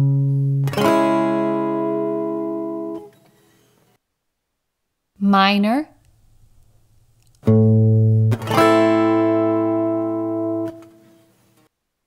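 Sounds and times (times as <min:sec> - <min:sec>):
guitar minor chord ringing: 0:00.0 - 0:03.0, 0:07.5 - 0:10.9.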